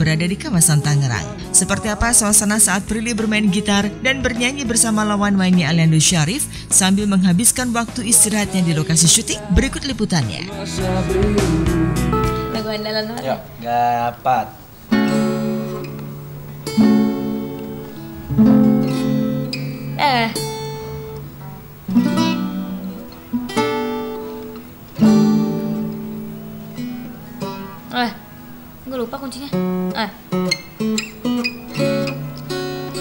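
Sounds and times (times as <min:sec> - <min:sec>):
acoustic guitar strummed slowly: 0:10.4 - 0:33.0.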